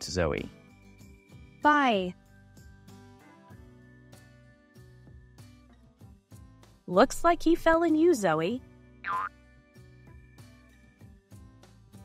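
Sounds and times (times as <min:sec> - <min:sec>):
soft background music with beat: 0:00.0 - 0:06.9, 0:08.6 - 0:12.0
cartoon falling tone effect: 0:09.1 - 0:09.3.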